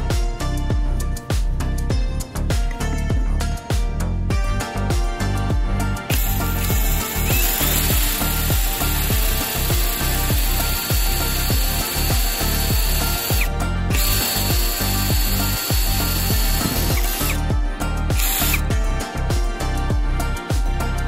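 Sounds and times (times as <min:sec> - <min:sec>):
cordless drill boring through pipe: 0:06.1 - 0:17.4, 0:18.2 - 0:18.7.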